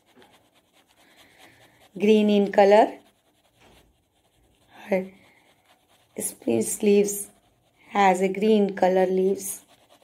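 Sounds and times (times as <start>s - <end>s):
writing tool scratching on paper: 0.0s - 10.0s.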